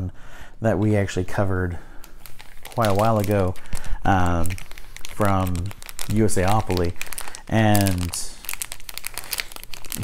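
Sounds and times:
plastic wrapper crinkling: 0:01.3 - 0:10.0
wrapper tearing: 0:02.0 - 0:10.0.

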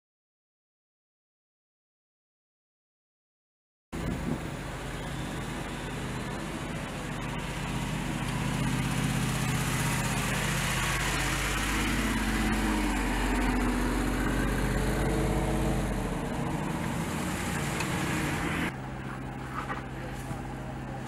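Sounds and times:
car engines rumbling: 0:04.0 - 0:21.0.

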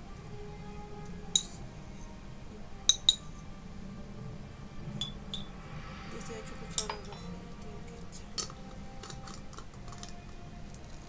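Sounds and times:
glass jar clinking: 0:02.9 - 0:03.3, 0:05.0 - 0:05.5, 0:08.4 - 0:10.2.

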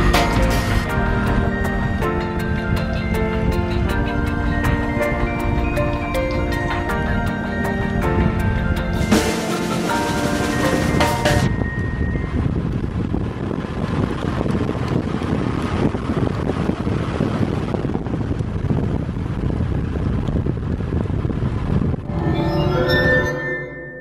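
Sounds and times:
music: 0:00.0 - 0:12.8, 0:22.0 - 0:24.0
wind rushing over microphone: 0:00.0 - 0:23.7
motorcycle engine at road speed: 0:12.7 - 0:22.0.

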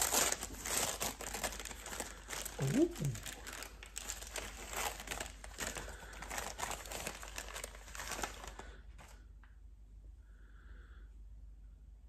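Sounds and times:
wrapping crinkling and rustling: 0:00.0 - 0:09.3.

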